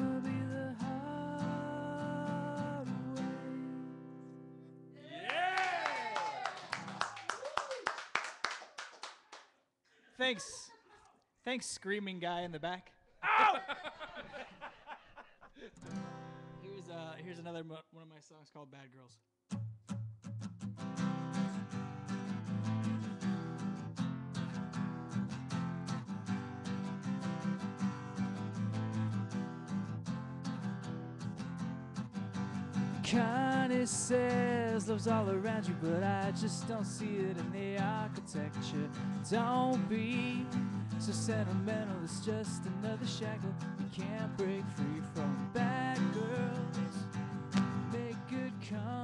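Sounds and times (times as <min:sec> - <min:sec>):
acoustic guitar strumming: 0:00.0 - 0:04.6, 0:15.8 - 0:16.6, 0:19.5 - 0:49.0
man screaming and whooping: 0:05.0 - 0:06.7, 0:13.2 - 0:14.2
people clapping: 0:05.1 - 0:09.6.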